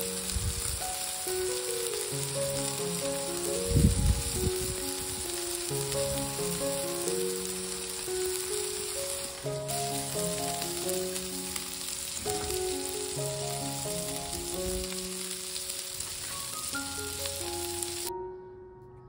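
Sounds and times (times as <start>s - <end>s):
meat sizzling on a griddle: 0.0s - 18.1s
gentle piano melody: 0.0s - 19.0s.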